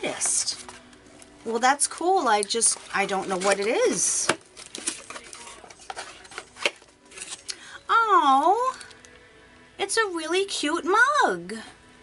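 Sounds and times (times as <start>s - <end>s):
cardboard scraping: 2.8s - 7.4s.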